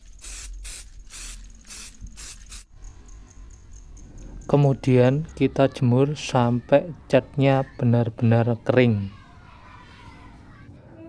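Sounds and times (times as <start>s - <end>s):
spray can hissing bursts: 0.0s - 2.7s.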